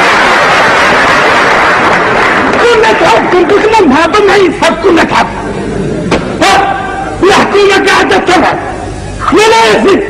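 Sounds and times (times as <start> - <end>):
man shouting: 6.4 - 10.0.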